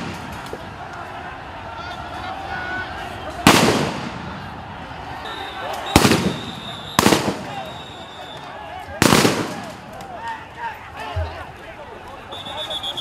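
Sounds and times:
people's voices: 0.0 - 13.0.

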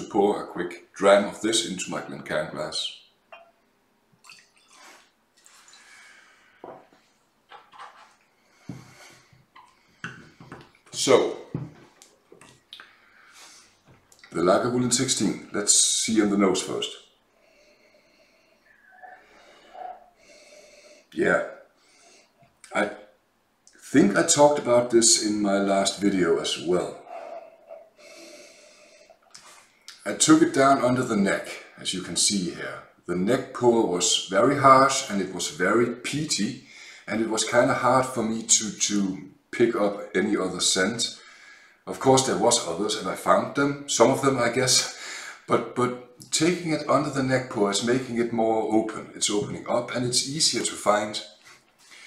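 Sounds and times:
liquid pouring into a glass: 4.2 - 5.0.

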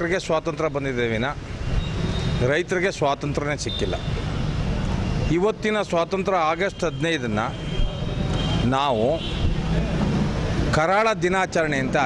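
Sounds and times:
man speaking: 0.0 - 1.4, 2.4 - 4.2, 5.3 - 7.6, 8.6 - 9.3, 10.7 - 12.0
low engine hum of traffic: 0.0 - 12.0.

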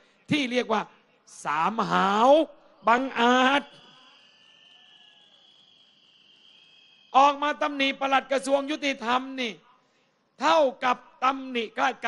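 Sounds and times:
crickets chirring: 3.2 - 8.8.

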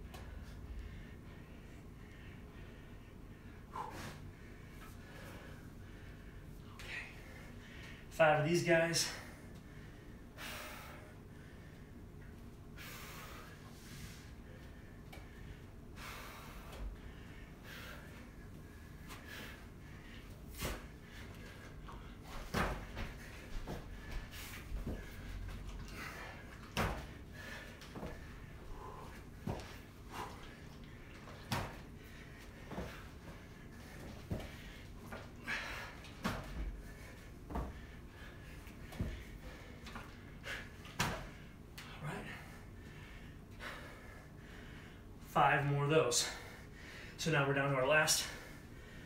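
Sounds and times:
man breathing hard: 0.0 - 8.1, 8.8 - 45.3, 46.2 - 47.2, 48.1 - 49.0.

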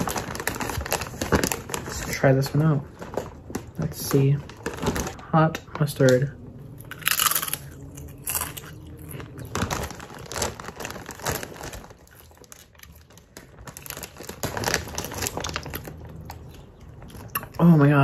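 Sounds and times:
crunching and chewing chips: 0.0 - 5.2, 5.8 - 18.0
plastic bag crinkling: 0.0 - 6.3, 6.9 - 18.0.

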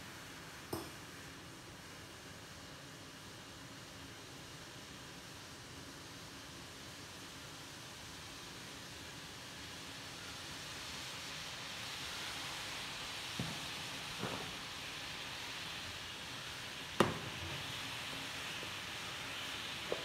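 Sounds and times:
liquid sizzling in pan: 0.0 - 20.0.

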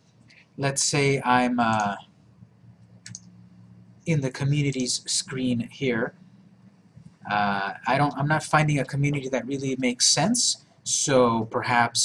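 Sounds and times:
faint low hum: 0.0 - 12.0
computer mouse click: 2.8 - 3.3.

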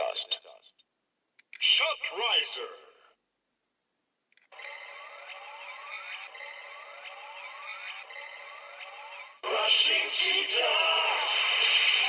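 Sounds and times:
click: 1.4 - 1.7, 4.3 - 4.7
electronic siren-like sweep: 4.6 - 12.0.

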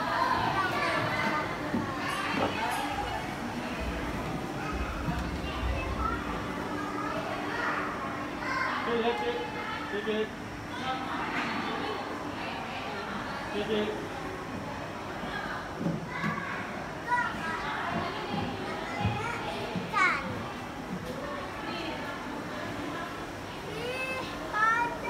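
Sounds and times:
children chattering: 0.0 - 25.0
people talking in background: 0.0 - 25.0
children's high voices: 4.5 - 8.9, 16.1 - 20.5, 23.6 - 25.0.

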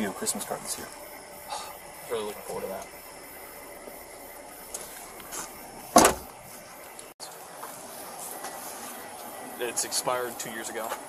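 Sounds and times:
faint steady background noise: 0.0 - 11.0
car door slamming: 5.8 - 6.4.

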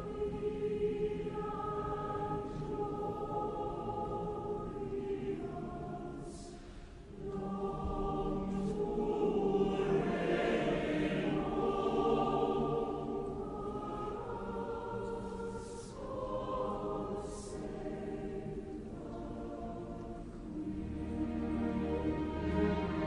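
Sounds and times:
choir and audience singing: 0.0 - 23.0.

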